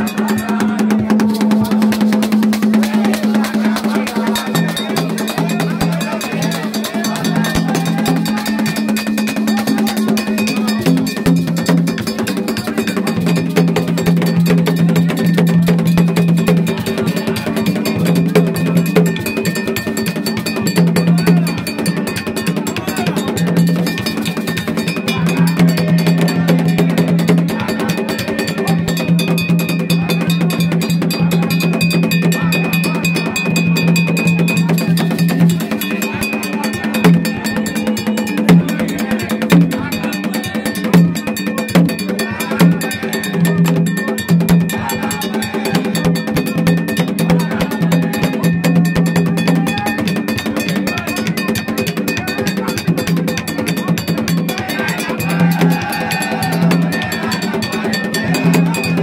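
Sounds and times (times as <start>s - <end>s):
fast metallic clanking beat: 0.0s - 59.0s
hand drums: 0.0s - 59.0s.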